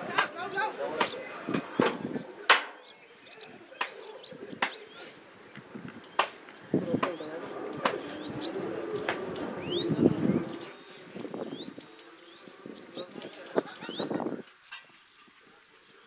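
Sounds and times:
murmur of distant voices: 0.0 - 16.0
birds whistling: 2.7 - 14.4.

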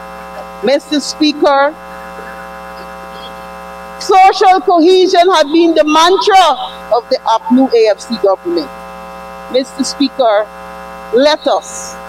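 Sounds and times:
buzzy electrical hum: 0.0 - 12.0.

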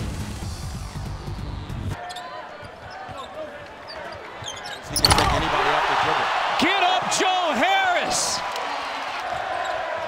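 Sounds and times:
sneakers squeaking: 1.3 - 5.5, 9.2 - 10.0.

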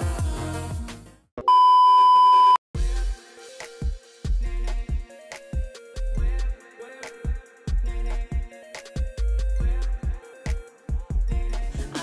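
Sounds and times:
pop music: 0.0 - 1.2, 2.8 - 12.0
electronic censor beep: 1.5 - 2.6.

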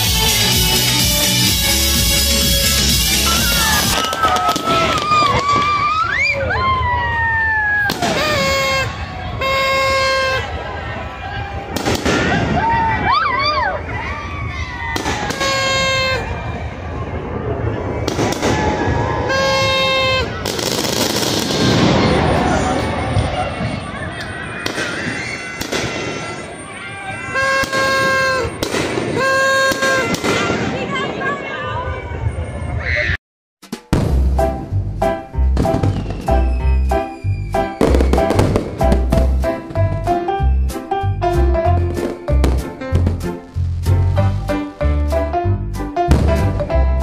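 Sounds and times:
large outdoor crowd voices: 0.0 - 33.2, 34.4 - 47.0
fireworks bangs: 2.9 - 10.9, 11.5 - 13.5, 14.2 - 32.6, 33.9 - 34.8, 35.5 - 40.2, 41.9 - 44.2, 46.1 - 46.8
toy party horn blasts: 8.0 - 10.5, 15.4 - 16.2, 19.3 - 20.3, 27.3 - 28.6, 29.2 - 30.2.

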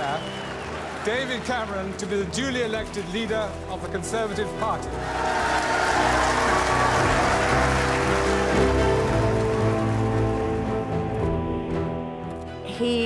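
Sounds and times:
audience applauding: 0.0 - 11.5
background music: 0.0 - 13.0.

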